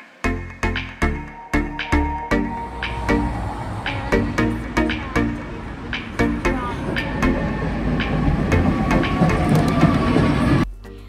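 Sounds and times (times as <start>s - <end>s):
tram rumbling: 1.7s - 10.7s.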